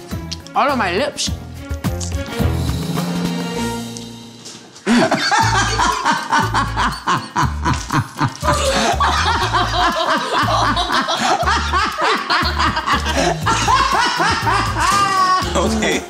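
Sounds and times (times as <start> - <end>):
man laughing hard: 4.9 - 15.9.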